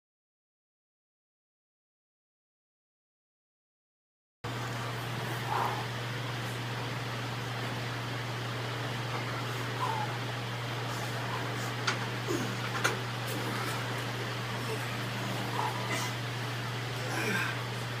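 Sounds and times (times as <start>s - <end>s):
steady low hum: 4.5s - 18.0s.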